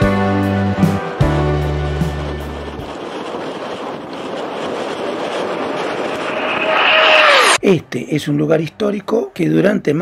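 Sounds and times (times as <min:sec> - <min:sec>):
low-flying jet aircraft rushing: 0:00.7 - 0:07.6.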